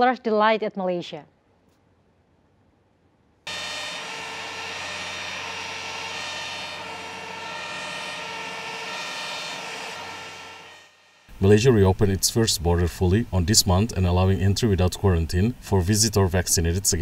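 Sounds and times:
jet engines whining: 0:03.5 - 0:11.8.

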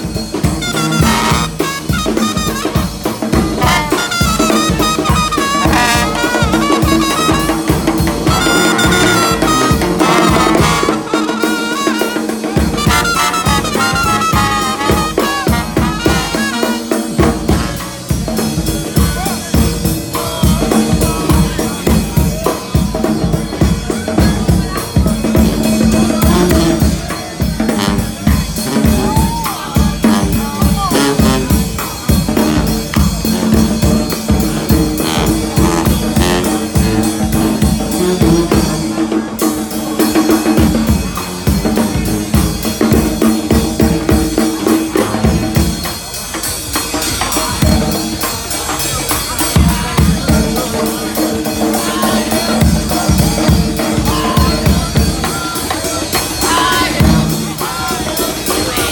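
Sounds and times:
trumpets: 0:00.0 - 0:18.4, 0:24.7 - 0:45.9, 0:49.1 - 0:58.9
bass drum and snare beat: 0:00.0 - 0:58.9
trombone: 0:00.0 - 0:58.9
sousaphone: 0:00.4 - 0:17.8.

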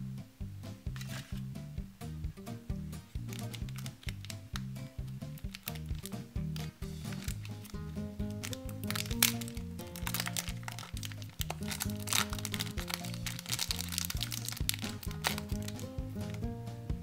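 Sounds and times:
background music simple melody: 0:00.0 - 0:17.0
plastic wrapper crinkling: 0:03.2 - 0:16.4.

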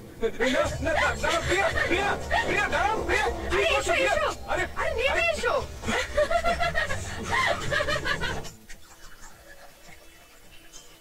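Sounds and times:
person laughing: 0:05.8 - 0:08.5.

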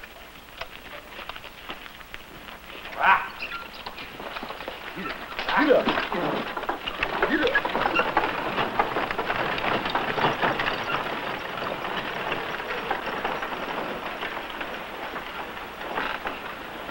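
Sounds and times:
horse hooves clattering: 0:00.0 - 0:16.9
wooden wagon wheels rattling: 0:00.0 - 0:16.9.

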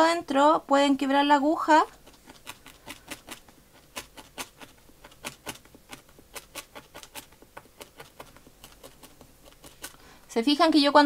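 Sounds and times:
felting needle stabbing into wool: 0:01.8 - 0:10.1
needle bumping wooden stick: 0:01.9 - 0:10.0.

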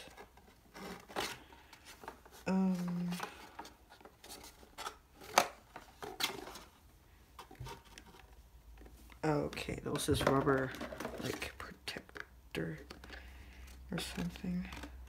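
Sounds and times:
plastic parts clicking and knocking: 0:07.4 - 0:15.0.

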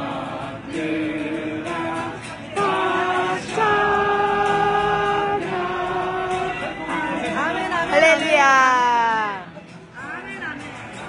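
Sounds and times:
group singing: 0:00.0 - 0:08.6
acoustic guitar: 0:00.0 - 0:11.0.

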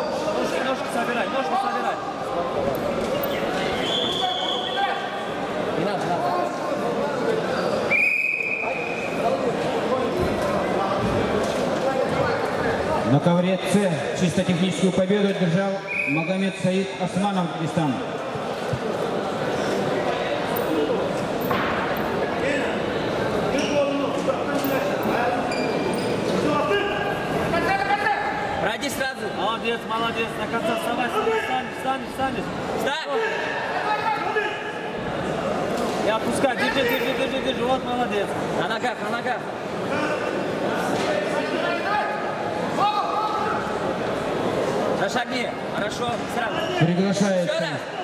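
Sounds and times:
shouted voices and chatter echoing: 0:00.0 - 0:48.0.

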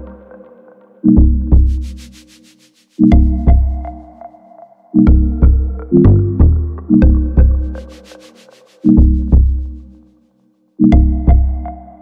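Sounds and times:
rhythmic high hiss pulsing: 0:01.6 - 0:04.0, 0:07.7 - 0:09.3
deep bass kicks: 0:09.0 - 0:09.7.

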